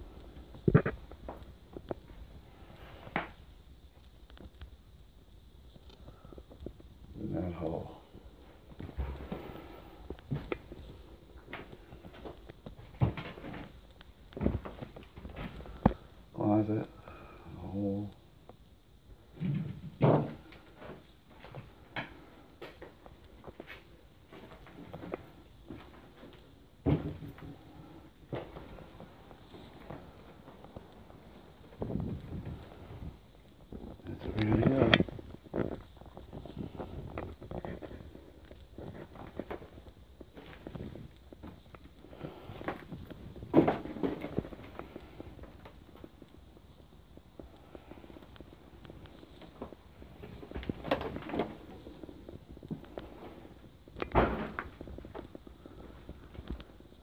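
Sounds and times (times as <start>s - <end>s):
footsteps crunching over rubble: 20.4s - 57.0s.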